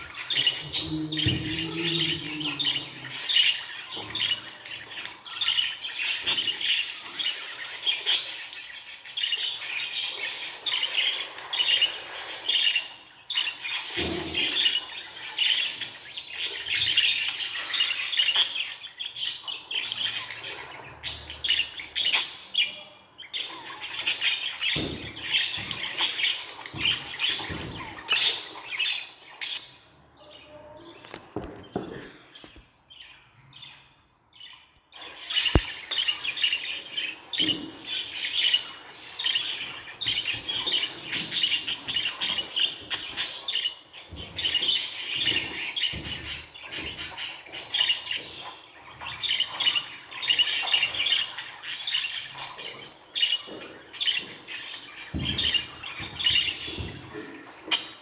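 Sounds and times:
budgerigars chirping and squawking: 0.0 - 58.0.

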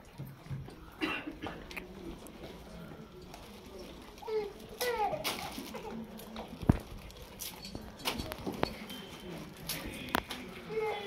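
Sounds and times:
faint murmur of voices: 0.0 - 11.0.

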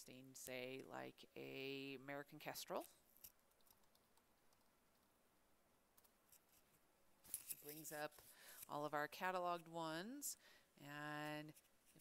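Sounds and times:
computer keyboard and mouse clicks: 3.4 - 5.1.

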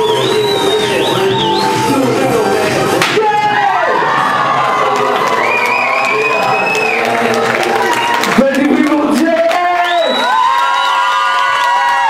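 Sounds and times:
audience cheering and shouting: 0.0 - 12.0.

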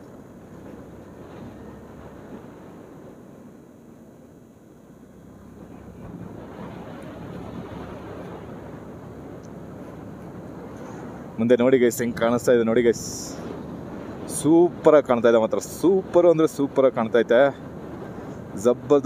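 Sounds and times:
wind noise: 5.4 - 19.0.

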